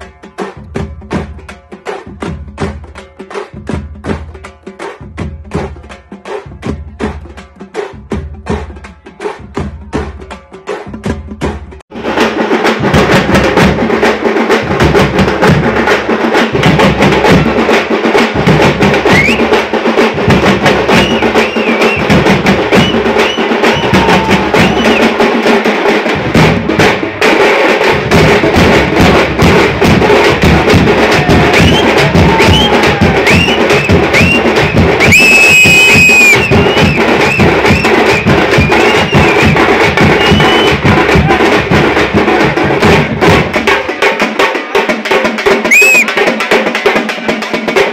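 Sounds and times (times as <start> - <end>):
frame drums beaten with sticks: 0.0 - 47.9
deep bass drum: 16.6 - 17.6, 21.9 - 25.0, 26.1 - 27.2, 27.8 - 43.8
high whistle-like calls: 19.0 - 19.6, 20.9 - 25.2, 31.5 - 40.9, 45.6 - 46.1.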